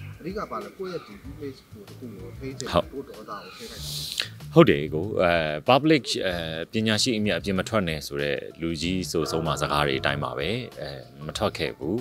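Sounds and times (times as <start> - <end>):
man speaking in a low voice: 0.2 - 3.9, 4.5 - 12.0
short hiss: 3.6 - 4.5.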